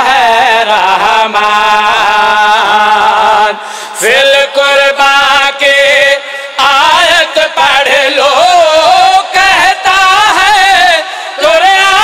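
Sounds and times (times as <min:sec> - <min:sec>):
men chanting into microphones: 0:00.0 - 0:12.0.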